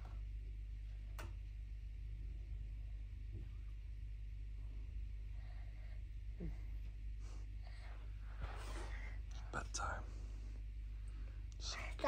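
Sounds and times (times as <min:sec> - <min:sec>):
low steady hum: 0:00.0 - 0:12.0
person whispering: 0:09.4 - 0:10.1, 0:11.6 - 0:12.0.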